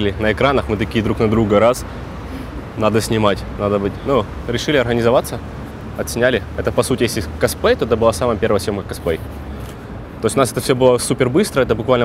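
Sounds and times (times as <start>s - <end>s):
man speaking: 0.0s - 1.9s, 2.6s - 9.3s, 10.2s - 12.0s
road traffic rumble: 0.0s - 12.0s.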